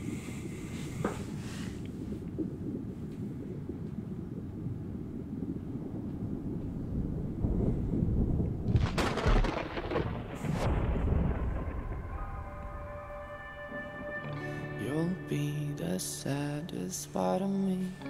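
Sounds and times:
deep rumbling: 0:00.0 - 0:17.9
loud crack: 0:08.7 - 0:12.2
held musical notes: 0:11.6 - 0:18.0.

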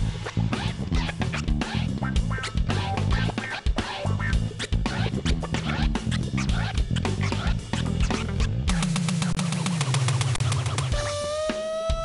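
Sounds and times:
bass line: 0:00.0 - 0:09.4
keytar synth lead bending: 0:00.0 - 0:09.5
drum kit fast strokes: 0:00.0 - 0:12.0.

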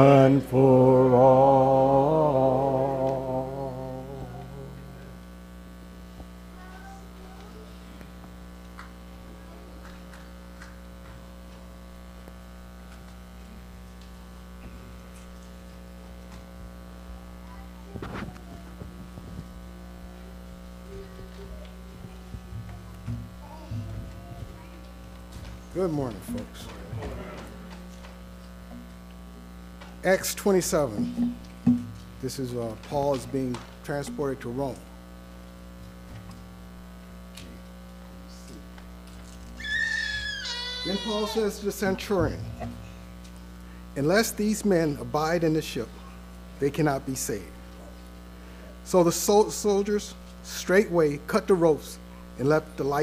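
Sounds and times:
low electrical mains hum: 0:00.0 - 0:53.0.

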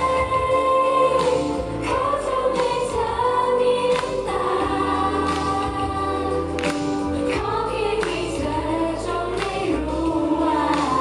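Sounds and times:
backing music: 0:00.0 - 0:11.0
two women singing together: 0:00.0 - 0:11.0.

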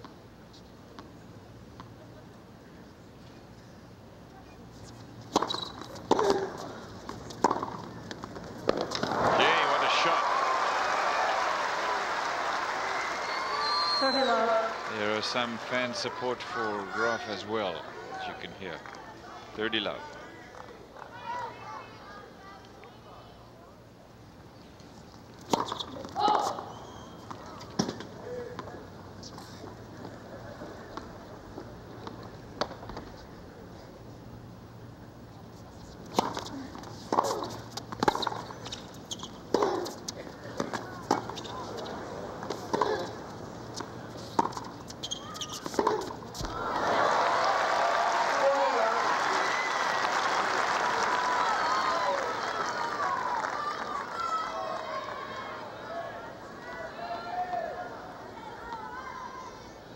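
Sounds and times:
crowd applause and cheering: 0:08.9 - 0:16.8, 0:46.5 - 0:55.8.

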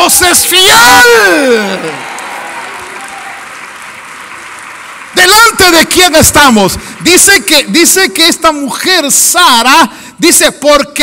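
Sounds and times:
crowd applauding: 0:00.0 - 0:08.2.

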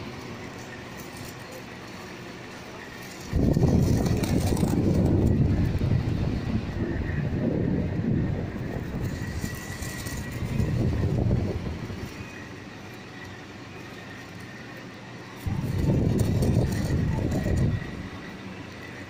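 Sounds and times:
faint steady whine: 0:00.0 - 0:19.0
fan airflow rumbling on microphone: 0:00.0 - 0:19.0.

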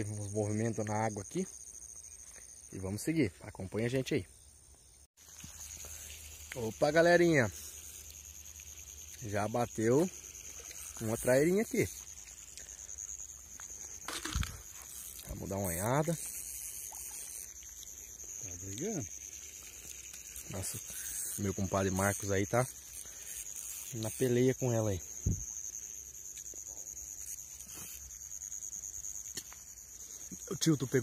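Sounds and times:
night insects chirring: 0:00.0 - 0:31.0
faint ticks: 0:04.7 - 0:06.8, 0:07.6 - 0:09.3, 0:10.1 - 0:15.3, 0:16.2 - 0:21.4, 0:25.2 - 0:28.1, 0:29.2 - 0:30.5
rustling through tall grass: 0:05.2 - 0:21.6.

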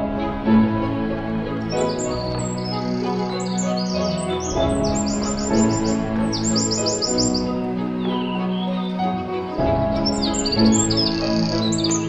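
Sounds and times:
calm music with held chords: 0:00.0 - 0:12.0
bird chirping: 0:01.6 - 0:09.1, 0:10.0 - 0:12.0.

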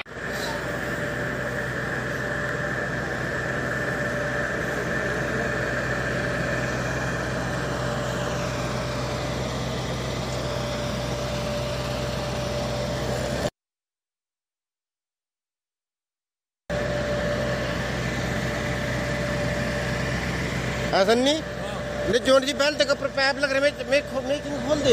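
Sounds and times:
constant whine: 0:00.0 - 0:13.5, 0:16.7 - 0:24.9
mechanical drone with low hum: 0:00.0 - 0:13.5, 0:16.7 - 0:24.9.

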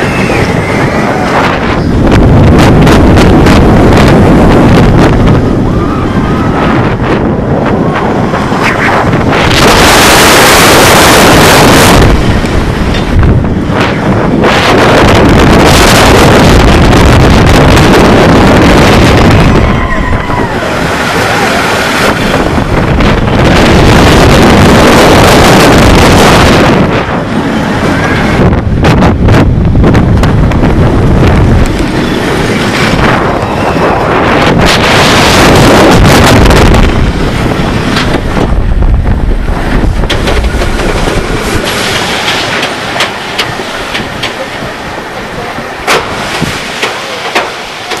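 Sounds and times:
roller coaster train rumbling on track: 0:00.0 - 0:48.0
wind rushing over microphone: 0:00.0 - 0:48.0.

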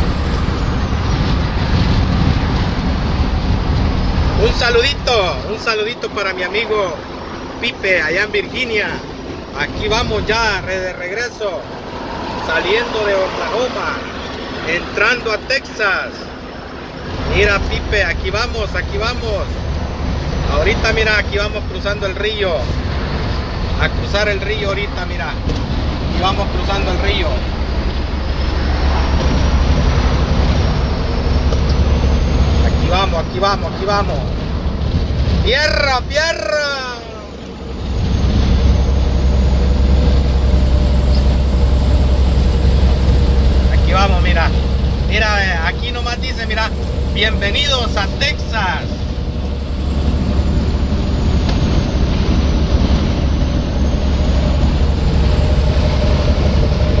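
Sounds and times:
road noise rushing: 0:00.0 - 0:57.0
truck engine drone: 0:00.0 - 0:57.0.

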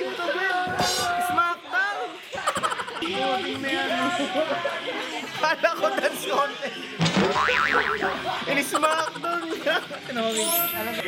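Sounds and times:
cartoon spring boing: 0:07.2 - 0:08.2.

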